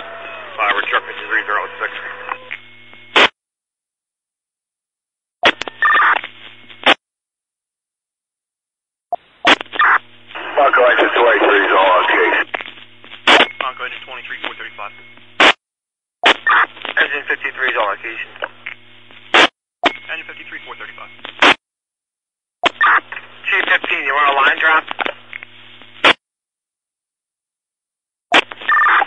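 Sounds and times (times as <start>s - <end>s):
muffled radio voices: 0.0s - 2.6s, 9.5s - 15.3s, 16.3s - 21.5s, 22.8s - 25.9s
steady hum: 0.0s - 3.3s, 9.2s - 15.5s, 23.0s - 26.1s.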